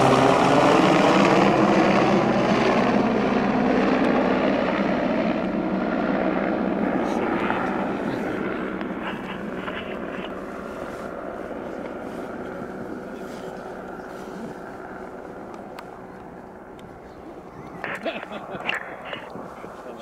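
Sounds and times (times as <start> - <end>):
helicopter flying overhead: 0.0 - 20.0.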